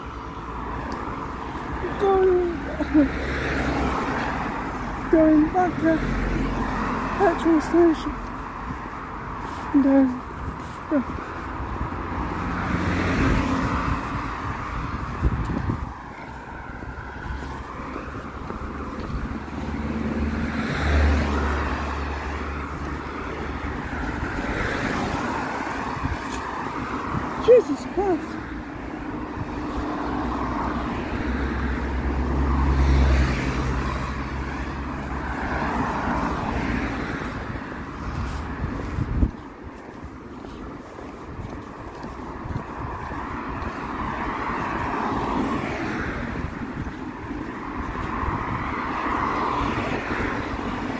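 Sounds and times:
deep traffic rumble: 0.0s - 50.9s
passing cars: 0.0s - 50.9s.

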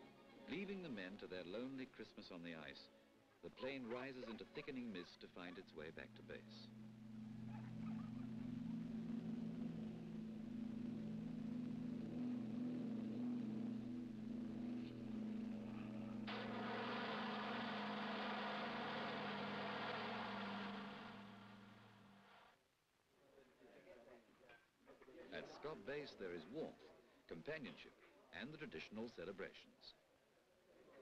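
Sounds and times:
propeller plane engine drone: 6.0s - 22.4s
loud rushing hiss: 16.3s - 22.4s.

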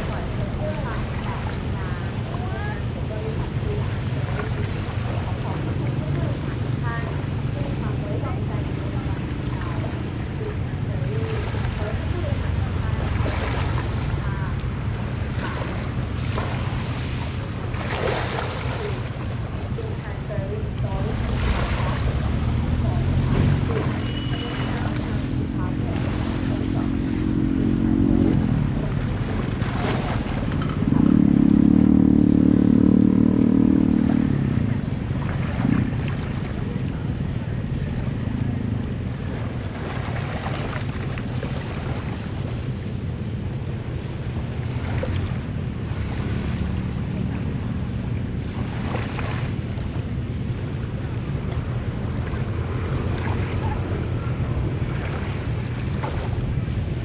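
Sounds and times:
small sea waves washing in: 0.0s - 57.0s
wind rumbling on microphone: 0.0s - 57.0s
low droning tone: 22.5s - 29.3s.

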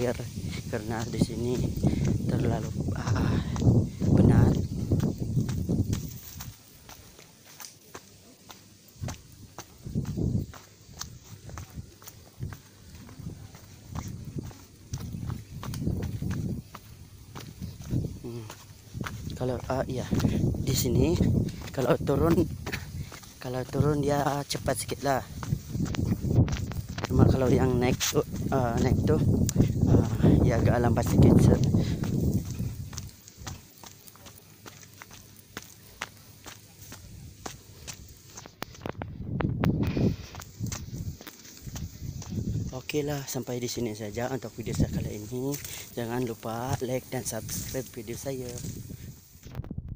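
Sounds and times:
wind gusts on microphone: 0.0s - 6.9s, 9.0s - 33.6s, 36.9s - 49.9s
footsteps on dirt trail: 0.0s - 49.8s.

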